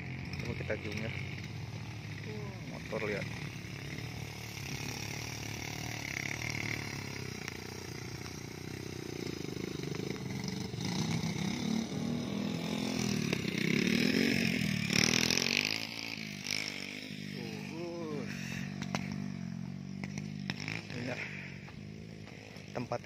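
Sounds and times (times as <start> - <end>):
small motorcycle engine running: 0.0 - 23.0.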